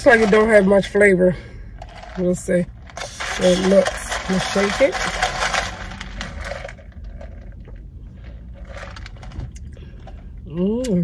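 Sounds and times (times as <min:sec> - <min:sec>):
ice rattling in plastic cup: 0:00.0 - 0:01.0, 0:01.8 - 0:09.4
low steady hum: 0:00.0 - 0:11.0.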